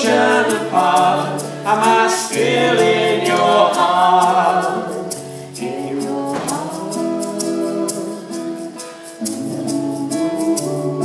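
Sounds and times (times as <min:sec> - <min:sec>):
acoustic guitar: 0:00.0 - 0:11.0
hand percussion ticking: 0:00.0 - 0:11.0
voices singing in harmony: 0:00.0 - 0:11.0.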